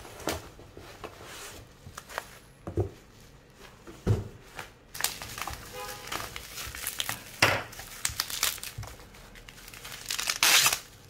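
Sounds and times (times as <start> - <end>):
bubble wrap crinkling: 4.9 - 11.0.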